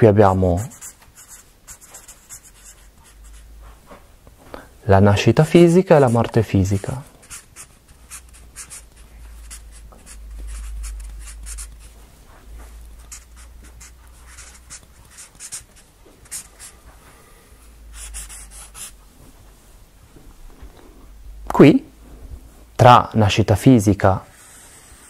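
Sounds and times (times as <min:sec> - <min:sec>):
hand writing strokes: 0:00.0 - 0:03.7, 0:05.4 - 0:12.0, 0:12.6 - 0:16.8, 0:17.9 - 0:19.0, 0:24.3 - 0:25.0.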